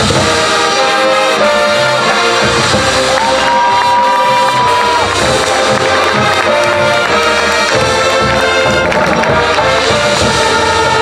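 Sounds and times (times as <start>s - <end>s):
marching band playing: 0.0s - 11.0s
crowd cheering: 0.5s - 11.0s.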